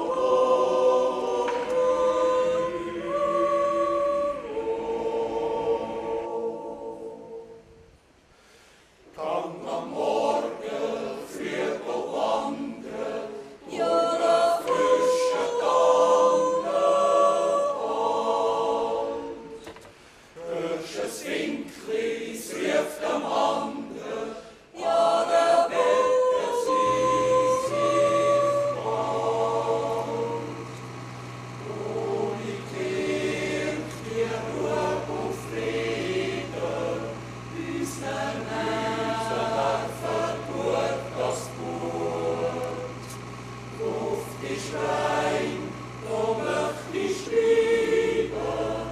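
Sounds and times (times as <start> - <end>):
choir singing: 0.0 - 7.8, 9.1 - 19.8, 20.4 - 48.9.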